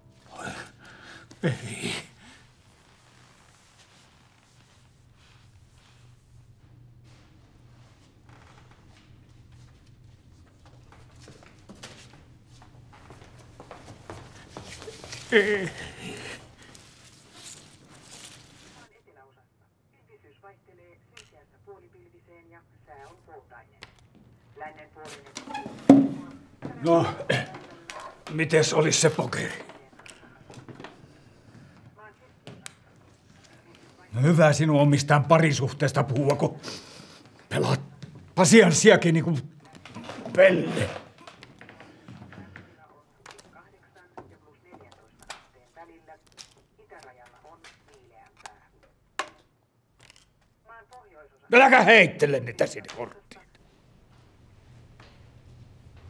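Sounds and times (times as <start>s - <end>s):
talk from small radio: 42.4s - 46.2s.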